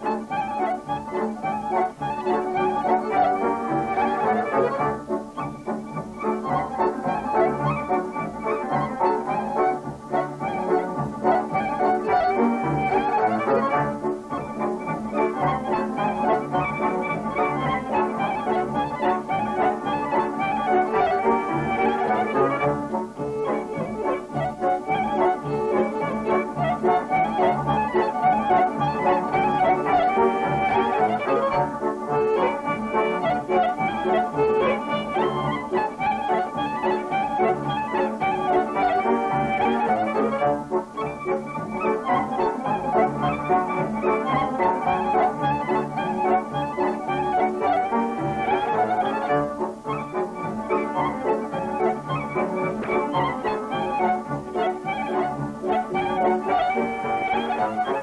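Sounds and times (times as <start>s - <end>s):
band accompaniment: 0.0s - 58.0s
violin folk melody: 0.0s - 58.0s.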